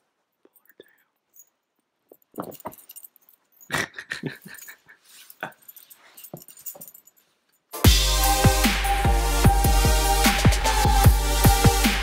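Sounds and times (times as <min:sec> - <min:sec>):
collar tags jingling: 0:00.6 - 0:07.8.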